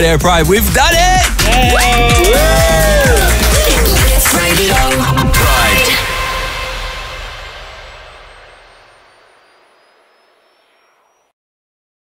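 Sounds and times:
faint rising whistle: 0:06.0 - 0:11.3.

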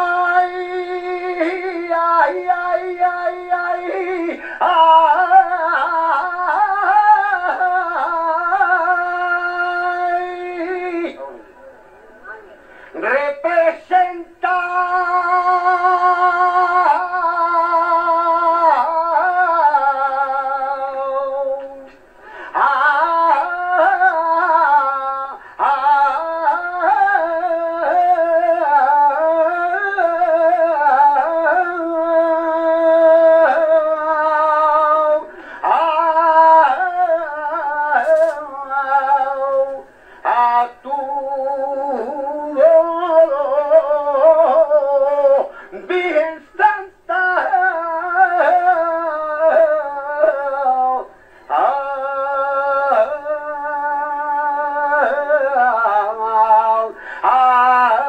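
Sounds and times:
solo voice singing unaccompanied: 0:00.0 - 0:11.2, 0:12.8 - 0:58.0.

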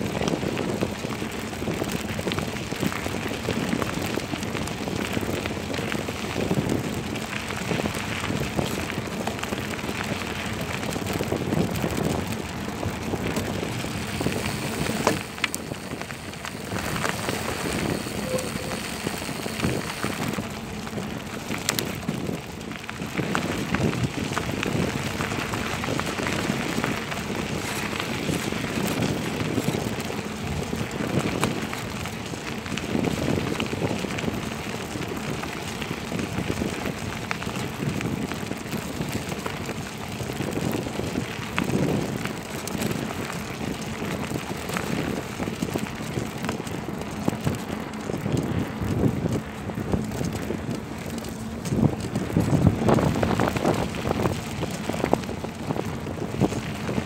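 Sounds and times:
tyres rolling over gravel: 0:00.0 - 0:57.0
wind on microphone: 0:00.0 - 0:57.0.

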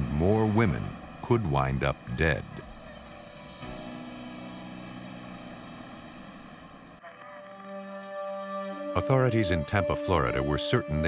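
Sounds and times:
steady rushing noise: 0:00.0 - 0:07.0
low background music tones: 0:00.0 - 0:11.0.

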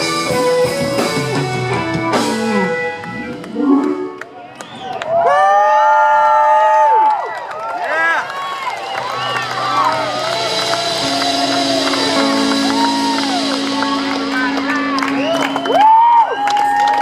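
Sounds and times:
electric guitar bending note: 0:00.1 - 0:04.3, 0:10.0 - 0:16.4
crowd cheering and whooping: 0:02.8 - 0:17.0
final band chord ringing: 0:10.2 - 0:15.7.

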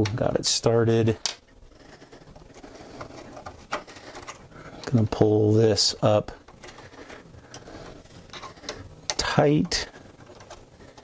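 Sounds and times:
screw turning clicks and scrapes: 0:07.5 - 0:11.0.

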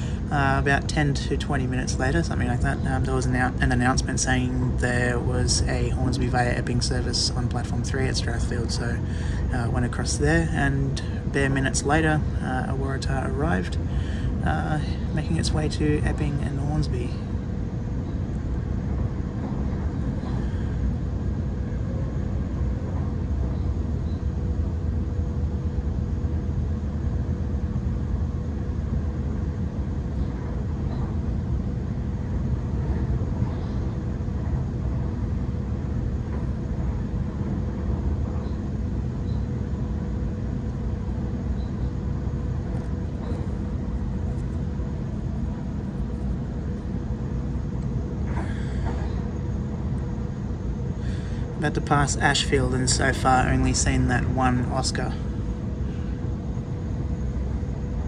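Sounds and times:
thin steady hum: 0:00.0 - 0:58.0.

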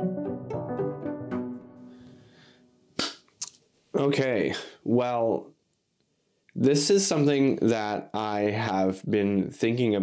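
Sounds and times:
sharp snap: 0:03.0 - 0:03.6.

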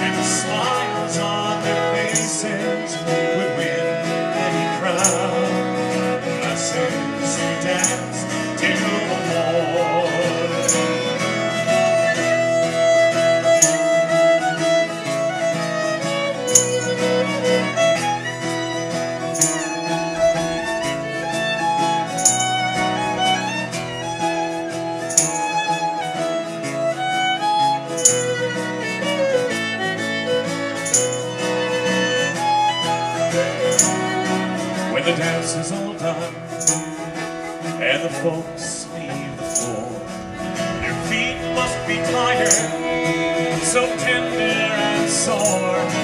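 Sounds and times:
fiddle melody: 0:00.0 - 0:46.0
strummed acoustic guitar: 0:00.0 - 0:46.0.

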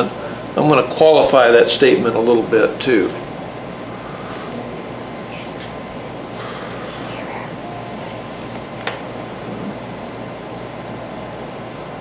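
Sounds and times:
room fan running: 0:00.0 - 0:12.0
faint voices: 0:06.4 - 0:08.4.

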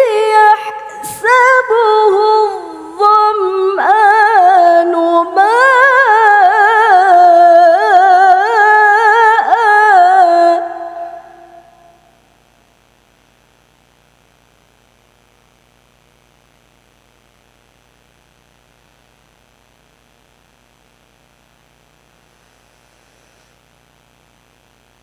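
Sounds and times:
background hiss: 0:00.0 - 0:25.0
faint electrical hum: 0:00.0 - 0:25.0.

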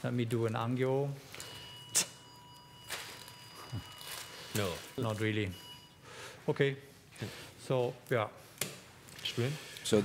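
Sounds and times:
faint steady high tone: 0:01.4 - 0:06.0.

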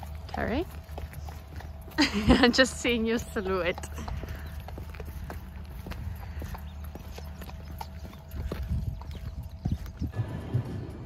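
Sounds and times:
footsteps on wet brick paving: 0:00.0 - 0:10.2.

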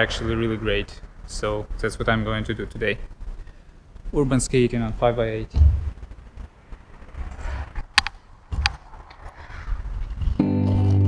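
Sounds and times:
guitar and keyboard music: 0:10.4 - 0:11.0.

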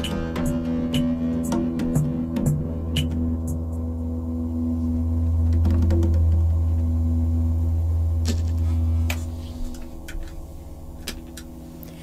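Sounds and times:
band holding a low note: 0:00.0 - 0:12.0.

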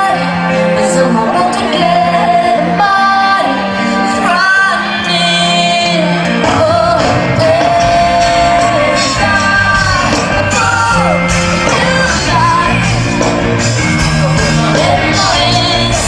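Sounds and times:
woman singing: 0:00.0 - 0:13.3, 0:14.1 - 0:16.0
live rock band: 0:00.0 - 0:16.0.

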